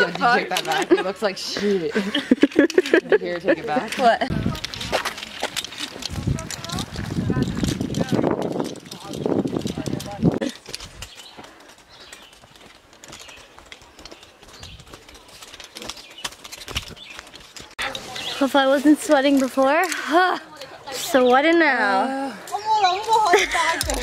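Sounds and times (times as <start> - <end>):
rustling: 1.9 - 20.0
footsteps on asphalt: 4.2 - 19.8, 22.6 - 24.0.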